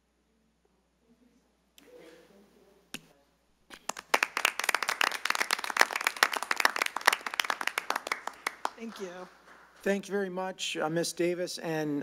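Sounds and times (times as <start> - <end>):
people clapping: 3.7 - 9.9.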